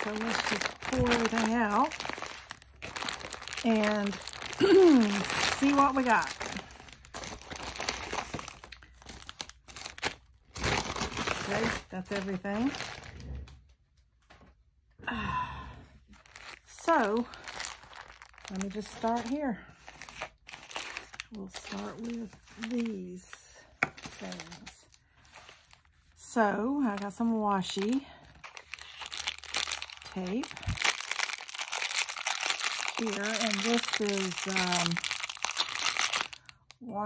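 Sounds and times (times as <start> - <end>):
plastic packets crinkling: 0.0 - 13.5, 16.1 - 36.8.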